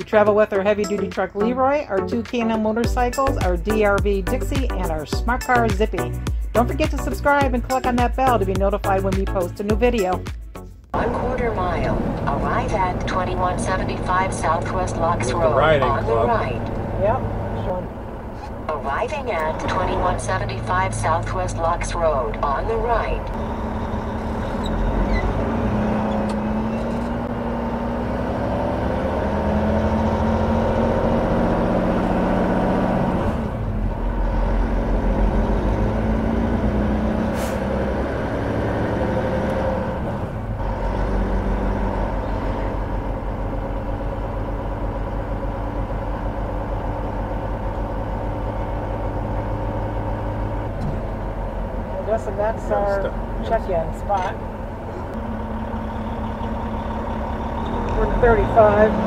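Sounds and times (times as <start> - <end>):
diesel truck engine from cab: 10.8 - 59.0.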